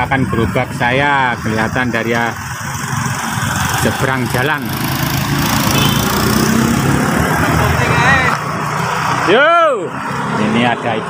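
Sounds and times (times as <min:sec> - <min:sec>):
motorbike passing: 0:00.0 - 0:11.0
street traffic noise: 0:00.0 - 0:11.0.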